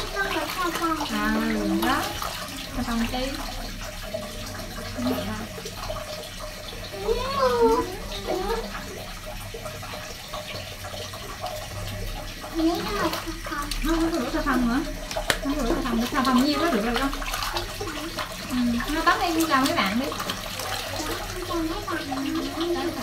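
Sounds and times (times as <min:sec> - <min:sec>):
water sloshing and dripping: 0:00.0 - 0:23.0.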